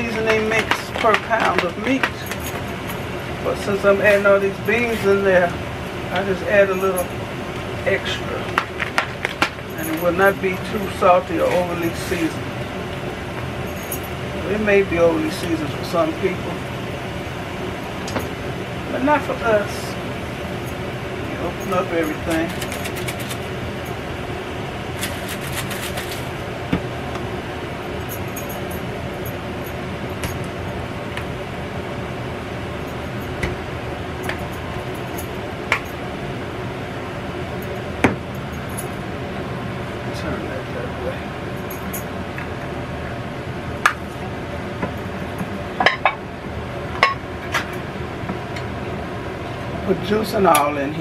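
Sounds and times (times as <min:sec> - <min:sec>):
air conditioner humming: 0:00.0 - 0:51.0.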